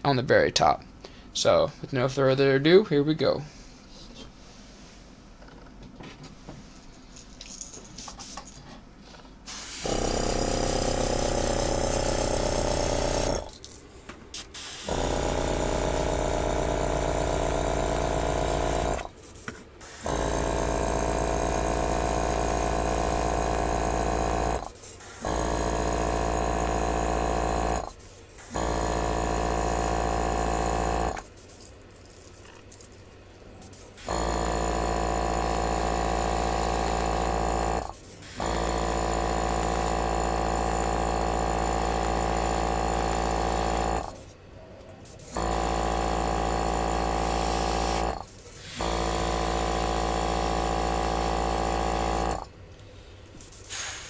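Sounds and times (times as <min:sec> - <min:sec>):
airbrush compressor motor humming: 0:09.5 - 0:13.5, 0:14.5 - 0:19.2, 0:19.8 - 0:31.2, 0:34.0 - 0:44.2, 0:45.3 - 0:52.4.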